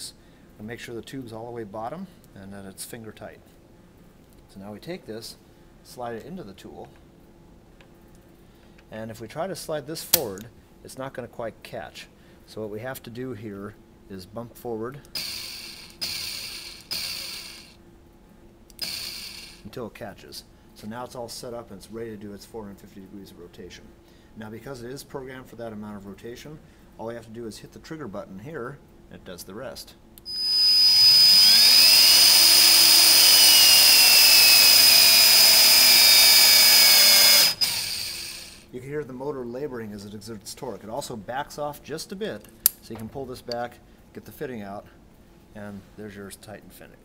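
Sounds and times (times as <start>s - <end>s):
electric motor bursts: 15.1s - 17.8s, 18.8s - 19.7s, 30.2s - 38.7s.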